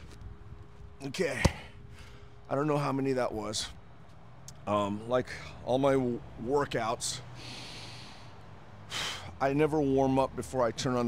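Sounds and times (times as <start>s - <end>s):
man breathing heavily: 1.3s - 2.5s, 7.2s - 9.4s.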